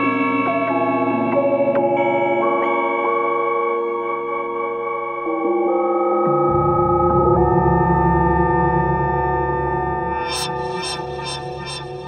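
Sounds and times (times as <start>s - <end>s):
synthesizer holding a chord: 5.0s - 12.0s.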